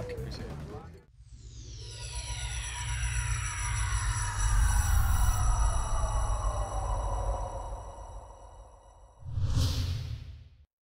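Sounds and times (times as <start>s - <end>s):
whoosh with low rumble: 1.3s - 10.6s.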